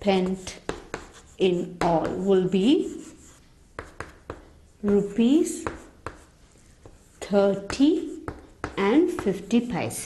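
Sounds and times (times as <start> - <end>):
chalk tapping on chalkboard: 0.0 - 9.8
chalk scratching on chalkboard: 0.0 - 10.0
woman speaking: 1.4 - 3.1, 4.8 - 5.8, 7.2 - 10.0.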